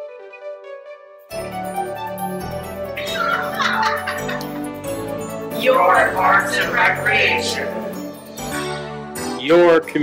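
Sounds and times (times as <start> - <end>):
light background music: 0.0 - 10.0
people laughing: 3.0 - 4.7.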